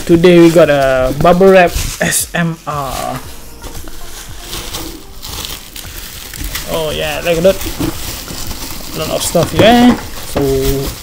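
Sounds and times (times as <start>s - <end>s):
bubble wrap rustling and crinkling: 0.0s - 11.0s.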